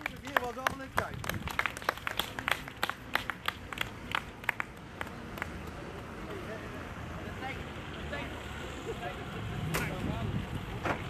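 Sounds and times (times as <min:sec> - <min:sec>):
group clapping hands: 0:00.0 - 0:06.3.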